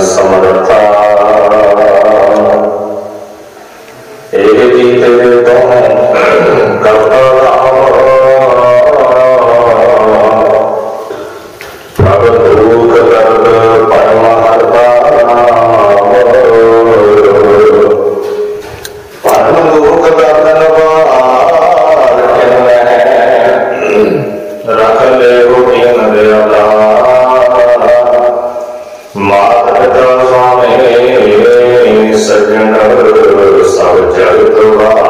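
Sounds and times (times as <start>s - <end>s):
devotional hymn singing: 0.0s - 35.0s
person chanting melodically: 0.0s - 35.0s.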